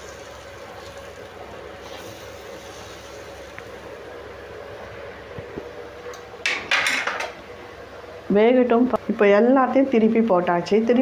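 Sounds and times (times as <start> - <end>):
food sizzling in oil: 0.0 - 4.2.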